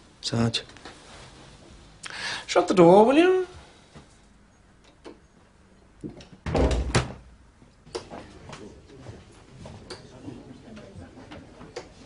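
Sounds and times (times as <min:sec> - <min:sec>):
door thudding shut: 0:06.4 - 0:07.3.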